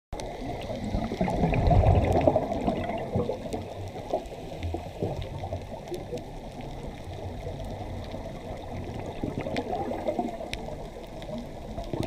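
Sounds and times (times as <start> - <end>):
faint clicks: 0.2 - 12.0
underwater gurgling rumble: 0.2 - 12.0.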